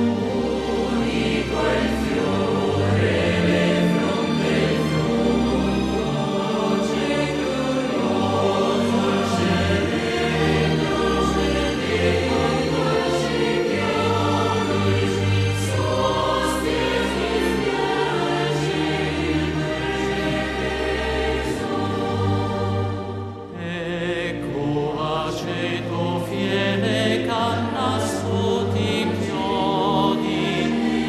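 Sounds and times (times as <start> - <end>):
choir singing a hymn: 0.0 - 31.0.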